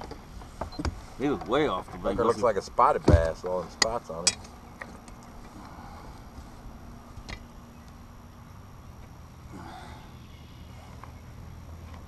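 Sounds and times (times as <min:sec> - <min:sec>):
low steady rumble: 0:00.0 - 0:12.0
thin faint hum: 0:00.0 - 0:12.0.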